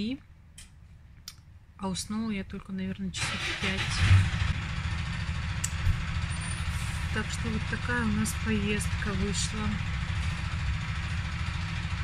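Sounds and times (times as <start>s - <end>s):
bus engine rumble: 1.9s - 12.0s.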